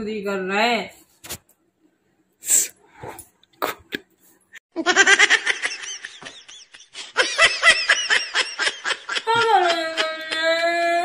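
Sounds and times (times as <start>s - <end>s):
person laughing: 4.8s - 10.6s.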